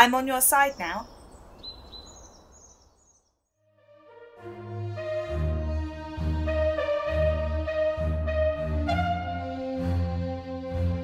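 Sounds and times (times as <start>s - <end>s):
faint outdoor ambience: 0.0s - 3.2s
high bird chirps: 0.5s - 3.4s.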